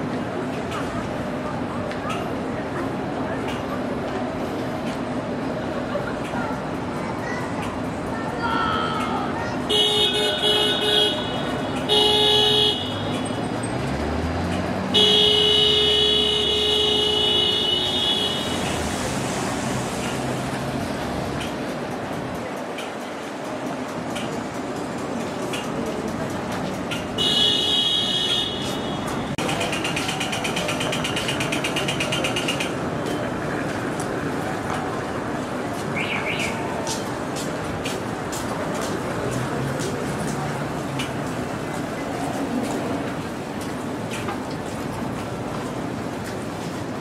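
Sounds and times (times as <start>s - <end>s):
city street traffic: 0.0s - 47.0s
vehicle horn honking: 9.7s - 13.1s, 14.9s - 18.6s, 27.2s - 29.0s.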